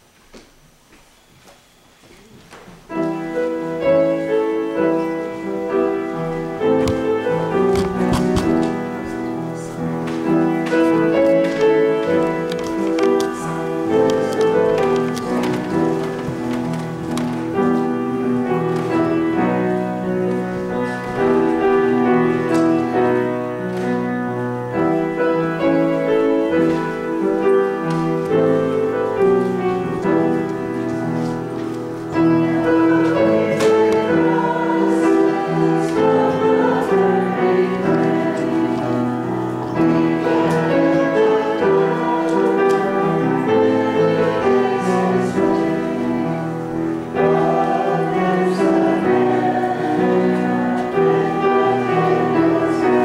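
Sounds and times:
church organ playing hymn chords: 0:00.8 - 0:53.0.

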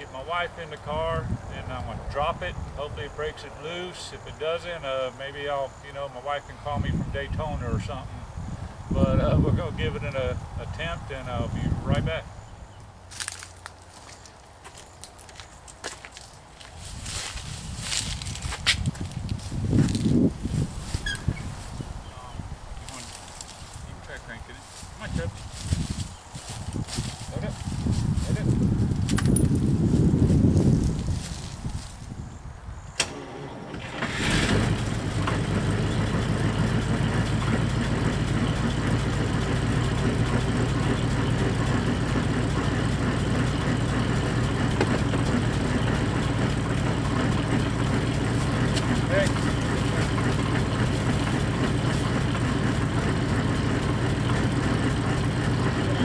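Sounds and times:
footsteps on leaves and concrete: 0:13.1 - 0:21.9, 0:22.7 - 0:23.9, 0:24.5 - 0:32.2, 0:48.3 - 0:50.2
car door clicking open: 0:33.0 - 0:33.4
car engine idling: 0:33.0 - 0:56.0.

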